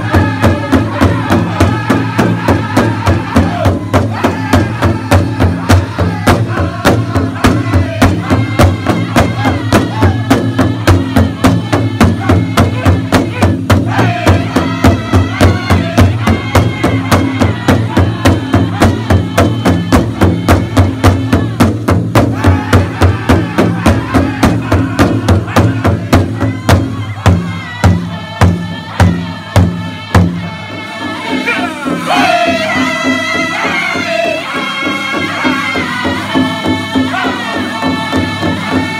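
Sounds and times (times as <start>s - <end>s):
large hide drum beating: 0.0s - 30.6s
group singing high-pitched: 0.0s - 38.9s.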